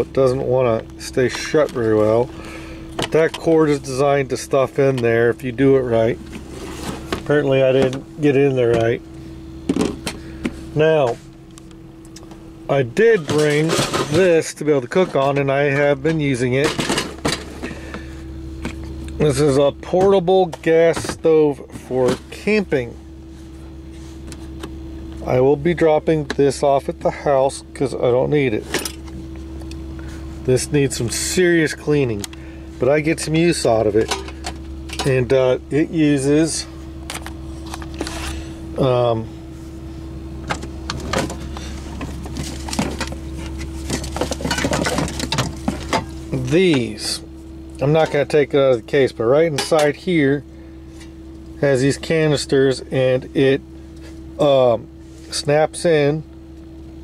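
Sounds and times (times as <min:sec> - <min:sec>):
low hum in vehicle cab: 0:00.0 - 0:57.0
objects clattering in a drawer: 0:13.2 - 0:14.3, 0:42.3 - 0:46.1.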